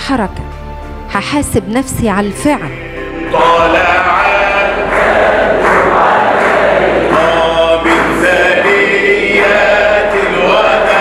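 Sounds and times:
crowd chanting a religious song: 0:02.6 - 0:11.0.

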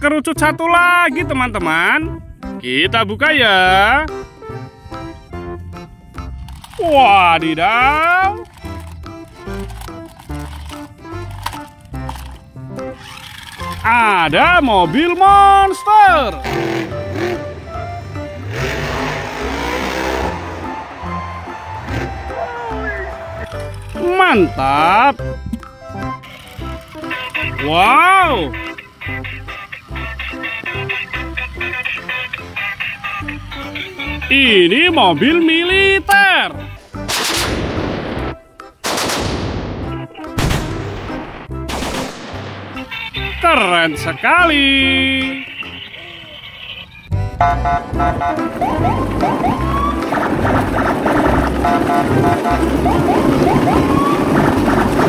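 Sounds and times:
truck engine revving: 0:03.7 - 0:38.4, 0:42.3 - 0:55.0.

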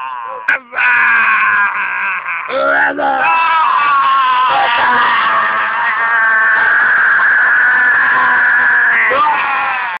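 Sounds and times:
man yelling in a high strained voice: 0:00.0 - 0:10.0.

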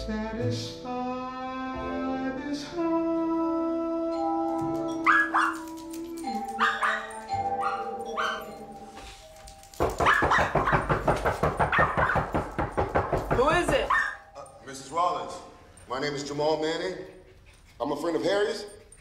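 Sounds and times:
small dog barking: 0:05.0 - 0:05.7, 0:06.6 - 0:08.6, 0:10.0 - 0:10.9, 0:11.7 - 0:12.4, 0:13.8 - 0:14.3.

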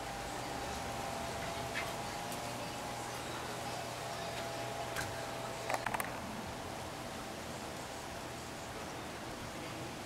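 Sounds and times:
steady outdoor ambient hiss: 0:00.0 - 0:10.0.

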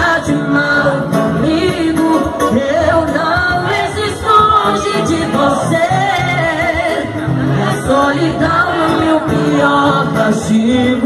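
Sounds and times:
live band music with singing: 0:00.0 - 0:11.0.

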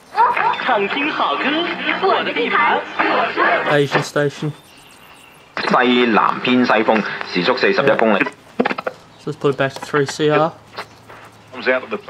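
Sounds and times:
radio speech: 0:00.2 - 0:04.6, 0:05.6 - 0:12.0.

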